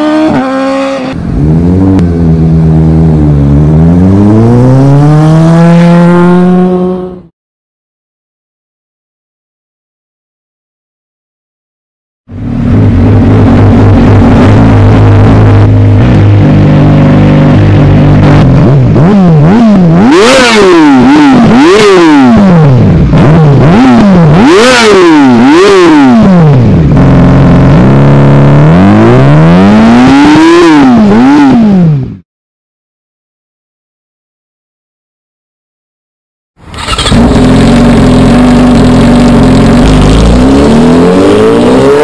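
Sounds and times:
motorcycle engine idling and revving: 0.0 - 7.3, 12.3 - 32.2, 36.6 - 42.0.

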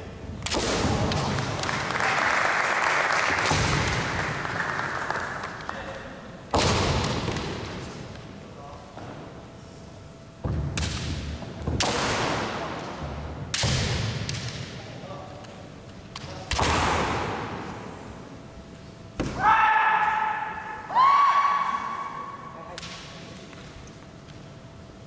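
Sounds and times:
bamboo sword strikes: 13.5 - 14.7, 16.2 - 17.4
people shouting: 19.3 - 22.4
long high-pitched shouts: 19.4 - 22.4.

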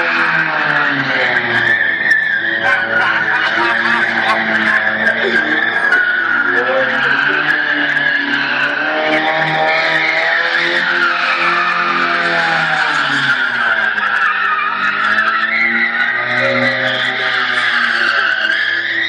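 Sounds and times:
car engine revving hard: 0.0 - 19.0.

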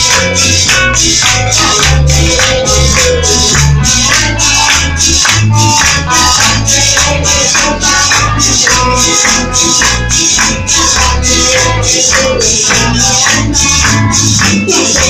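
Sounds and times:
bass and guitar: 0.0 - 15.0
rattling beat: 0.0 - 15.0.

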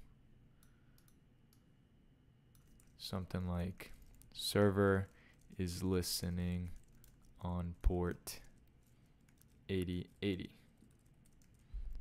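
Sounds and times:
computer keys clicking: 0.6 - 1.7, 2.5 - 12.0.

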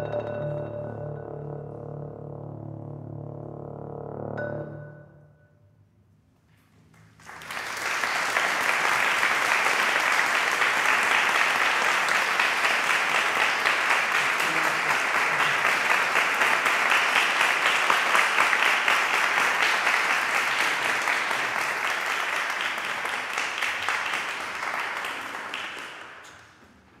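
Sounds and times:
audience applauding: 6.9 - 26.7.

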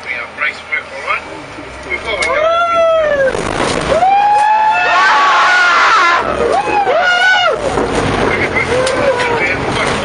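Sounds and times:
passengers screaming and whooping: 2.0 - 10.0.

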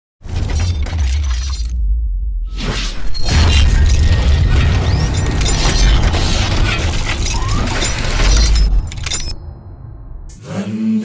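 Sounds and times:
deep bass rumble: 0.3 - 10.4
crashing shattering noise: 3.0 - 9.4.

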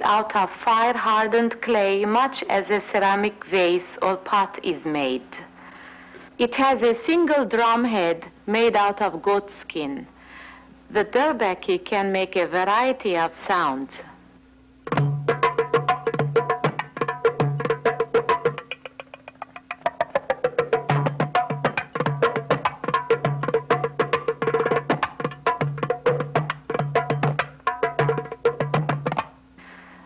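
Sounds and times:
goblet drum played by hand: 14.8 - 29.4.

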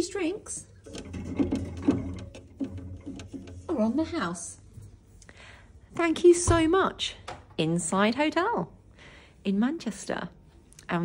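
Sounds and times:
fridge hum: 0.0 - 4.6
drinks bottles clicking and rattling: 0.6 - 4.2.

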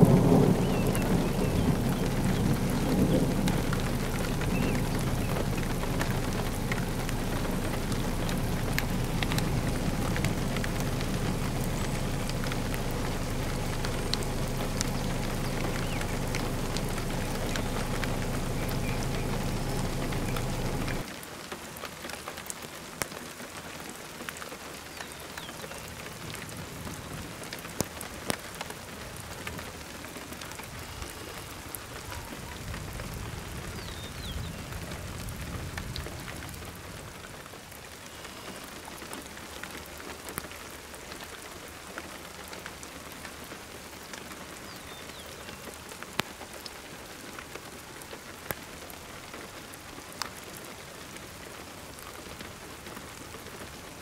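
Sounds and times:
low rumble: 0.0 - 21.1
rain falling: 0.0 - 54.0.

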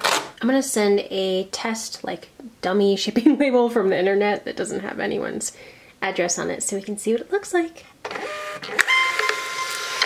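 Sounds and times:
printer motor whine with hiss: 8.1 - 10.0.

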